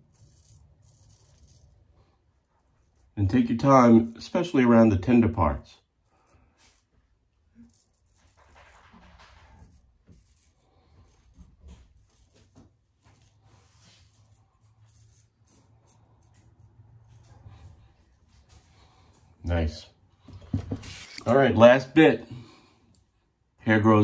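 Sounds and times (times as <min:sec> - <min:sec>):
razor scraping stubble: 0:00.0 - 0:04.1, 0:05.8 - 0:18.5, 0:20.7 - 0:21.4.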